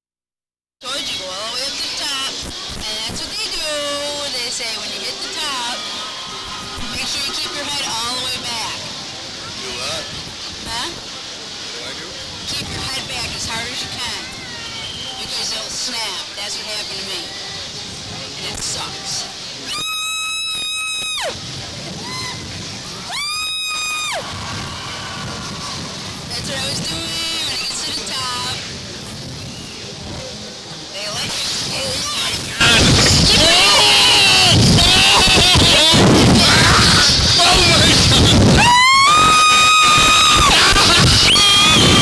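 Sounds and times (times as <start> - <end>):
wind buffeting microphone: 2.3 - 19.6, 24.0 - 42.0
riders screaming: 5.0 - 9.0, 19.1 - 28.6, 31.7 - 42.0.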